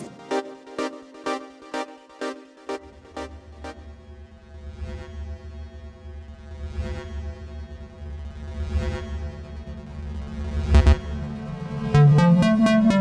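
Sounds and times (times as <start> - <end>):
deep bass drone: 2.8 - 13.0.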